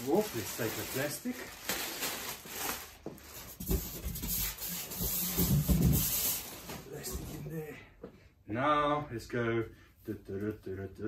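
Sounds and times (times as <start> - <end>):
plastic wrapping crinkling: 0.0 - 7.0.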